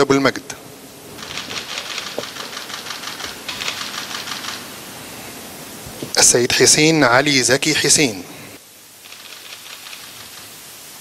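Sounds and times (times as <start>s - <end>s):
faint steady hiss: 0.0s - 11.0s
camera shutters clicking rapidly: 1.2s - 4.7s, 9.0s - 10.5s.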